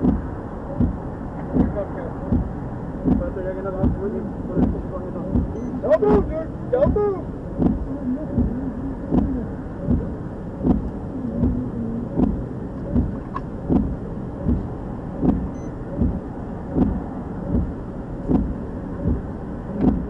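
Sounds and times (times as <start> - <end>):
vehicle cab rumble: 0.0 - 20.0
windshield wipers thudding: 0.0 - 20.0.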